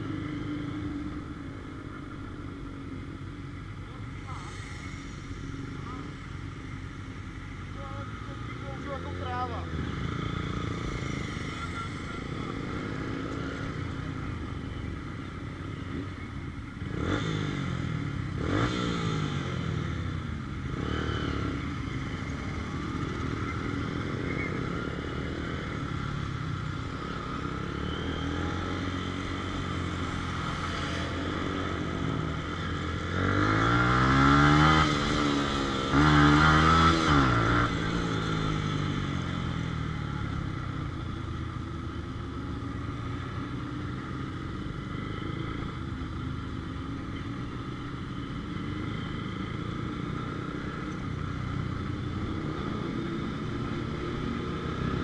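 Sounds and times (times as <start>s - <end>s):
motorcycle engines revving: 0.0s - 55.0s
motorcycle accelerating away: 16.8s - 22.0s, 27.3s - 40.4s.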